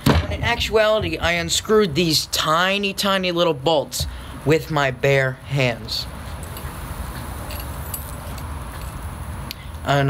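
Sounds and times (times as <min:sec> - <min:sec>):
small metal hardware clinking: 0:07.4 - 0:09.0.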